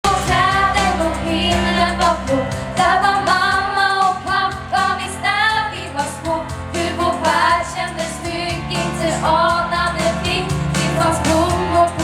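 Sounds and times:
girls singing together: 0.1 - 12.0.

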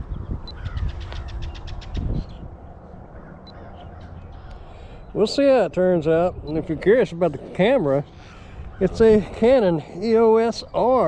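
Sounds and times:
faint bird calls: 0.5 - 11.0.

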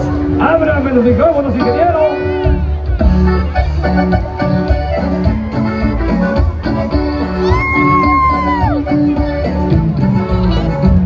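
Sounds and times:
live band playing folk dance music: 0.0 - 11.0.

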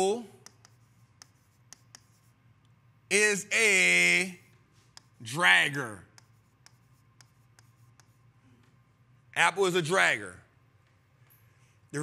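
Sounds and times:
pen writing on whiteboard: 0.4 - 2.4, 4.4 - 5.4, 6.0 - 8.3.

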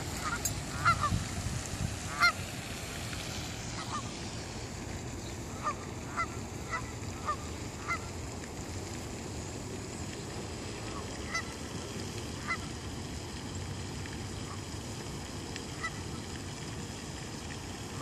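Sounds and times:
geese honking: 0.0 - 1.2, 2.1 - 2.4, 3.8 - 4.1, 5.5 - 8.1, 10.9 - 11.5.

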